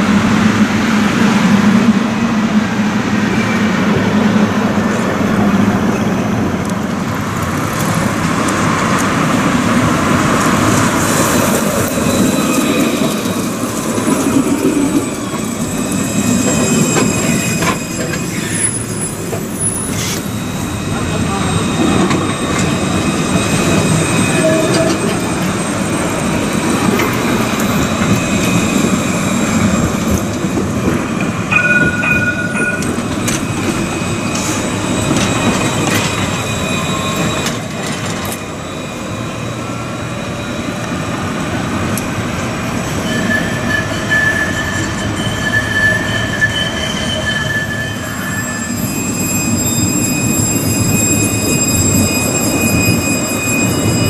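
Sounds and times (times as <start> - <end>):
tram rolling rumble: 0.0 - 54.0
high-pitched wheel squeal: 14.3 - 30.3, 31.5 - 41.5, 42.8 - 54.0.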